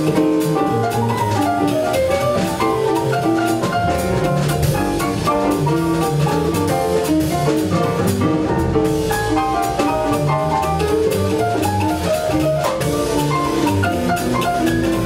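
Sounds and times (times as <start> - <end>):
drum kit: 0.0 - 15.0
upright double bass: 0.0 - 15.0.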